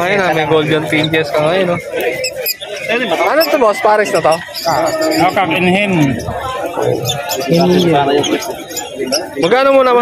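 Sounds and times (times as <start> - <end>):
caged birds chirping: 0.0 - 10.0
people talking: 0.0 - 10.0.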